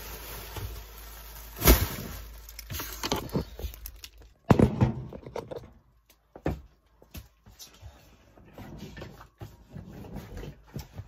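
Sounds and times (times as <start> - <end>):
plastic bag rustling: 0.0 - 4.4.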